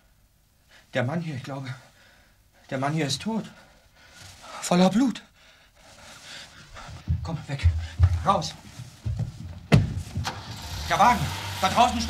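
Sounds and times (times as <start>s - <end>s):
car engine starting and running: 10.2s - 12.0s.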